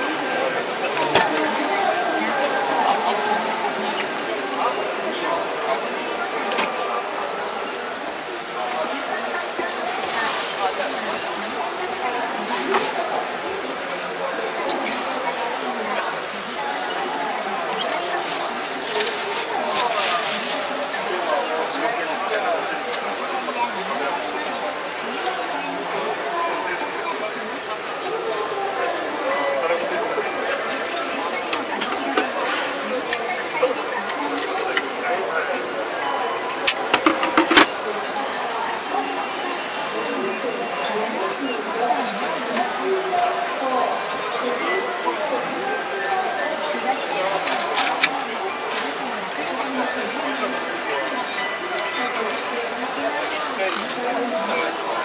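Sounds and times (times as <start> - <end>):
crowd chatter in a hall: 0.0 - 55.0.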